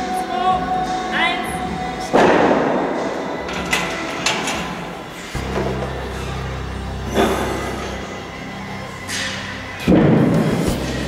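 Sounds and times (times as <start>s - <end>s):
background music: 0.0s - 11.0s
loud thump echoing in gym: 2.0s - 5.9s, 9.8s - 10.8s.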